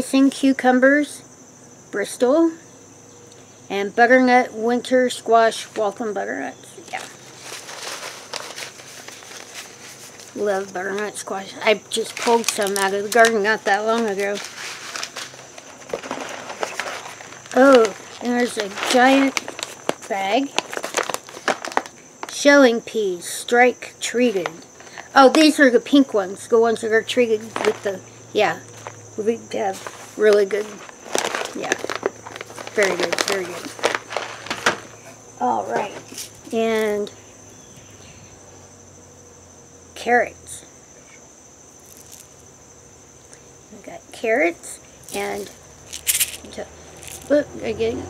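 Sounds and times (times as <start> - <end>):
crickets chirping: 0.0 - 48.0
paper packets rustling: 6.8 - 11.2, 11.9 - 22.4, 27.4 - 28.0, 28.7 - 29.0, 29.7 - 35.1, 41.8 - 42.4, 45.1 - 47.3
light clicks and crinkles: 6.9 - 11.1, 12.1 - 22.4, 29.8 - 35.0.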